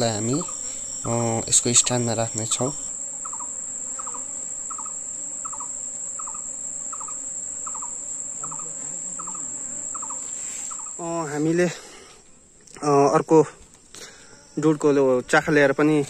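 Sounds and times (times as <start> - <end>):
high-pitched insect drone: 0.0 - 12.2, 12.8 - 16.0
insect triple chirp: 0.0 - 16.0.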